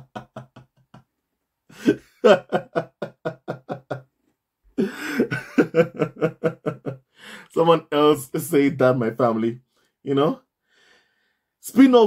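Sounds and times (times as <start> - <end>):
man laughing heartily: 0.0 - 1.1, 1.7 - 4.1, 4.8 - 7.5
man drawing breath: 7.1 - 7.5, 10.6 - 11.6.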